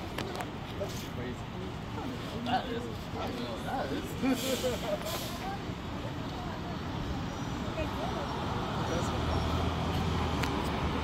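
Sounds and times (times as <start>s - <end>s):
bus engine rumble: 0.0s - 11.0s
street traffic: 0.0s - 11.0s.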